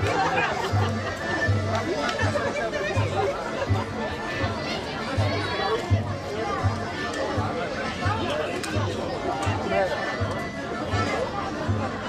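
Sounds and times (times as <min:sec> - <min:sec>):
crowd chatter: 0:00.0 - 0:12.0
folk band playing: 0:00.0 - 0:12.0.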